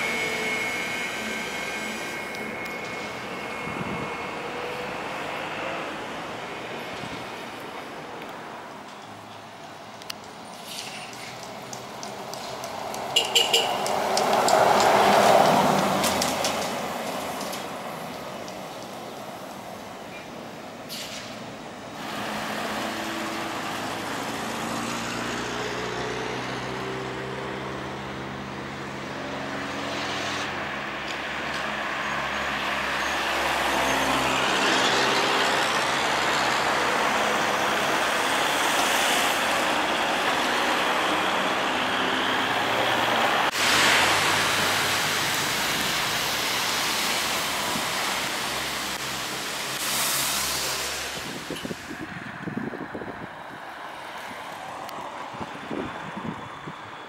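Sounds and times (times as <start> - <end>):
tyre and road noise: 0.0 - 57.0.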